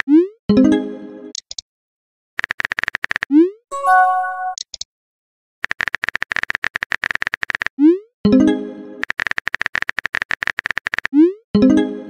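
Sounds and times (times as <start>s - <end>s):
rapid keyboard typing clicks: 2.4s - 3.3s, 5.6s - 7.7s, 9.0s - 11.2s.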